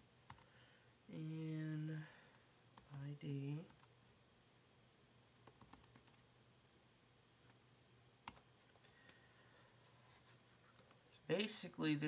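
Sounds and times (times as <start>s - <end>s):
keyboard typing: 0.3s - 0.5s, 2.8s - 3.9s, 5.3s - 6.2s, 8.2s - 8.4s.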